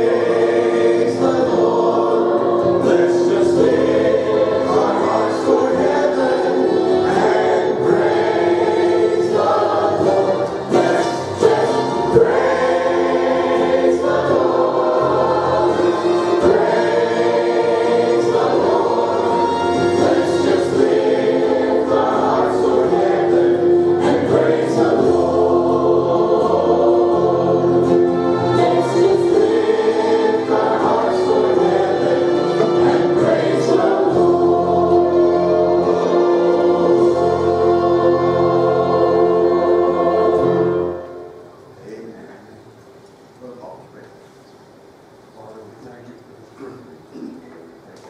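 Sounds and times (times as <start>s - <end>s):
musical accompaniment: 0.0s - 41.9s
congregation singing a hymn: 0.0s - 42.5s.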